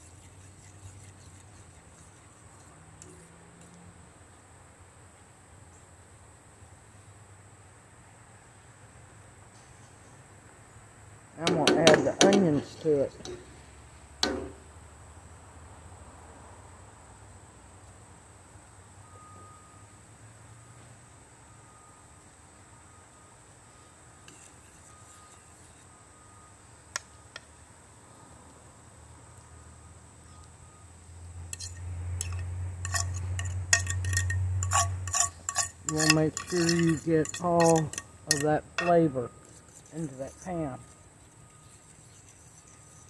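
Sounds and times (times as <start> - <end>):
metallic clinks and scrapes: 0.0 - 3.8, 24.2 - 26.0, 31.5 - 43.0.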